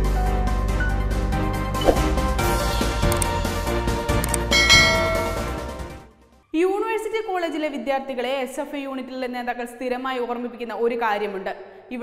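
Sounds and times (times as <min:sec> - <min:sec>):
upbeat intro music: 0:01.6 - 0:06.0
bell chime: 0:04.4 - 0:05.8.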